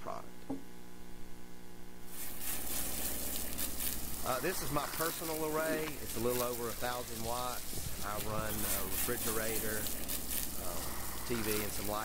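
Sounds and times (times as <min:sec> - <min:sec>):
hose water spraying on glass: 0:02.1 - 0:12.0.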